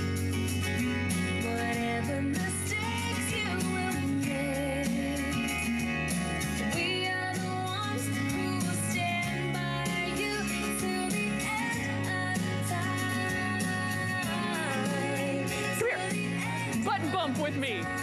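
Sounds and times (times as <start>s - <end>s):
song with singing: 1.4s - 18.0s.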